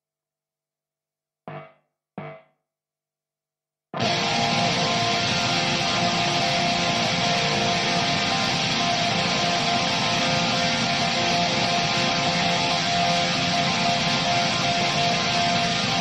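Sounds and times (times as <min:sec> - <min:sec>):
distorted electric guitar: 0:01.5 - 0:02.4, 0:04.0 - 0:16.0.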